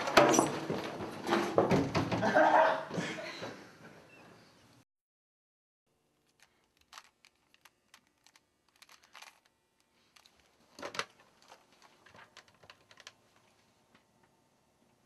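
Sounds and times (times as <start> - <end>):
plastic clatter: 6.3 - 9.5, 10.1 - 13.2
plastic cube clicks: 6.3 - 9.5.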